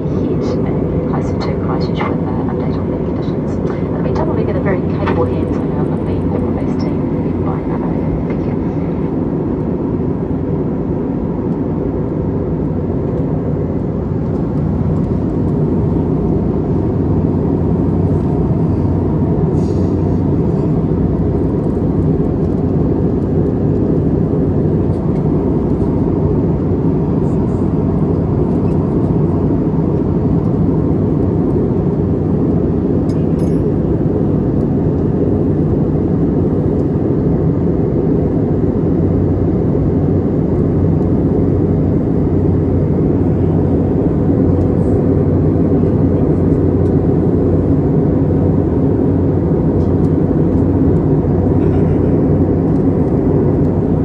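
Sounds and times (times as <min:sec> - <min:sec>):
airplane cabin engine noise: 0:00.0 - 0:54.0.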